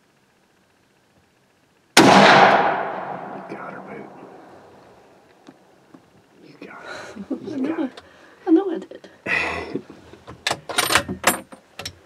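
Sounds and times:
rifle shot with echo: 2.0 - 4.7.

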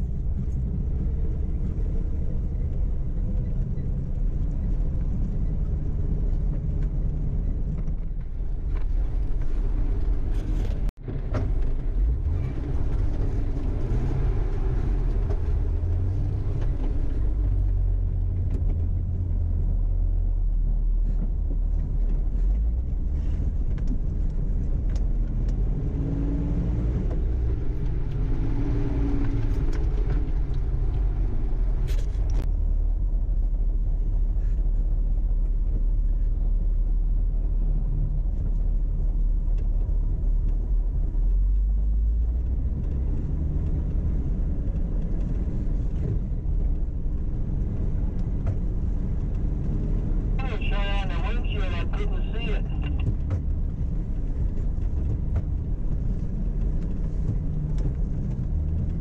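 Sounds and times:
off-road vehicle engine rumble: 0.0 - 59.0.

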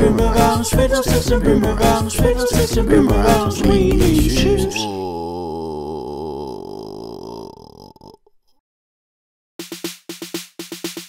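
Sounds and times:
clipped percussive beat: 9.6 - 11.0.

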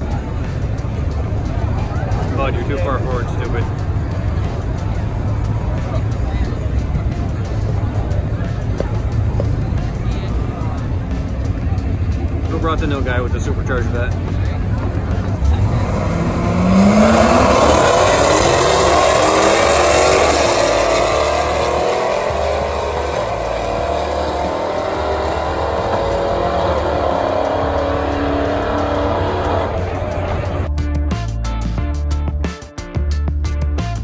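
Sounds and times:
car engines revving: 0.0 - 30.7
music with steady beat: 0.0 - 34.0.

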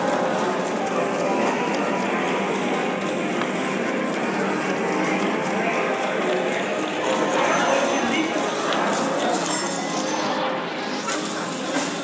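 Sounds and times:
machine clacking rhythmically: 0.0 - 8.2.

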